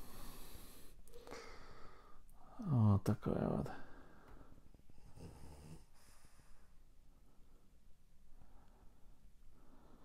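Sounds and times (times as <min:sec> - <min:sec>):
faint breathing: 0:00.0 - 0:02.6, 0:03.7 - 0:10.0.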